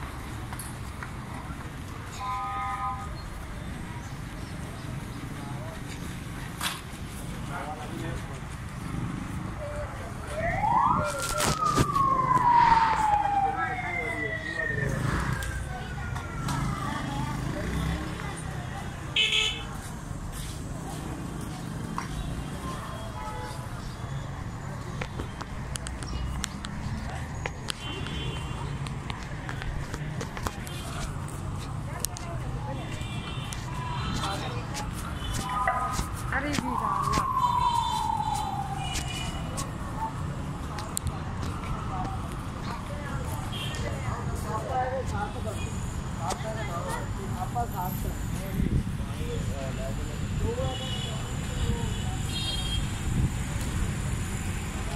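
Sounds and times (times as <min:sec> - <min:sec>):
street noise: 0:00.0 - 0:54.9
voices: 0:00.0 - 0:54.9
siren sweeping up and down: 0:10.3 - 0:15.9, 0:35.5 - 0:39.6
higher siren tone falling: 0:35.6 - 0:39.0.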